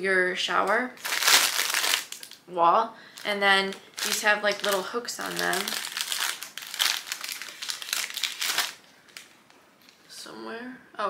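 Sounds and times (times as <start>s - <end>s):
plastic packaging crinkling: 1.0s - 2.4s, 3.1s - 10.0s.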